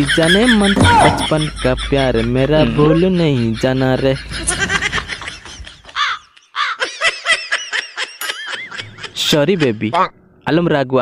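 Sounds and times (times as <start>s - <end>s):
high-pitched cartoon laughter: 0.0s - 9.7s.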